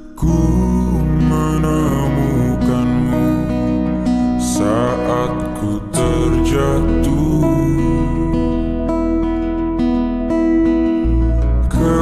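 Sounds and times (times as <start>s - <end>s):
slowed reverb pop song: 0.0s - 12.0s
strummed acoustic guitar: 0.0s - 12.0s.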